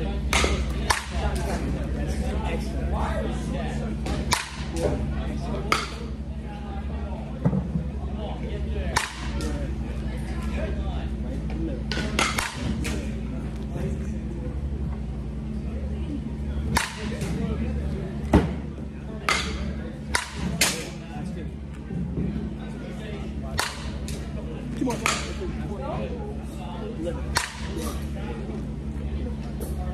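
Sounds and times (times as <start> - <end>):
steady low hum: 0.0 - 29.9
bat cracking on softball: 0.3 - 1.5, 4.2 - 4.8, 8.9 - 9.6, 11.9 - 13.0, 16.7 - 17.4, 19.3 - 21.0, 23.5 - 24.3, 27.3 - 27.8.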